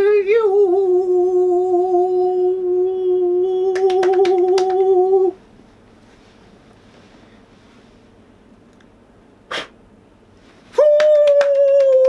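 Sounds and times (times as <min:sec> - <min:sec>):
rapid hand claps: 0:03.7 - 0:05.1, 0:10.8 - 0:12.0.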